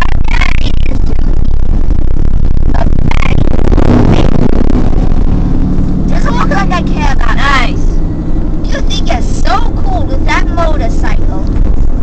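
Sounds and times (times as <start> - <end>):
car road and engine rumble: 0.0 - 12.0
person speaking: 6.0 - 7.9.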